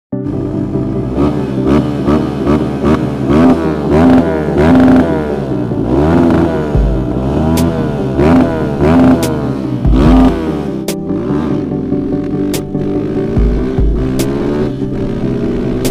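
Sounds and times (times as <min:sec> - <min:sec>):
motorcycle engine revving: 0:00.2 - 0:15.9.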